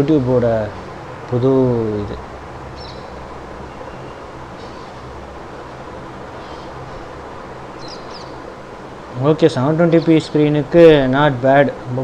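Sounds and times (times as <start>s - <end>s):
low background noise: 0.0s - 12.0s
high bird chirps: 2.8s - 5.1s, 7.7s - 8.4s.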